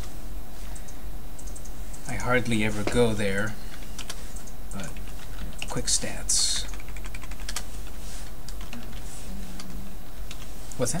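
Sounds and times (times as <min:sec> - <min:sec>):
computer keyboard typing: 0:00.8 - 0:02.6, 0:03.7 - 0:10.5.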